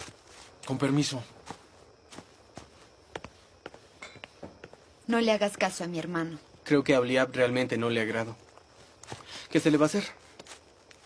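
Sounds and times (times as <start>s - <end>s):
faint footsteps walking away: 0.0s - 5.8s, 8.3s - 9.4s.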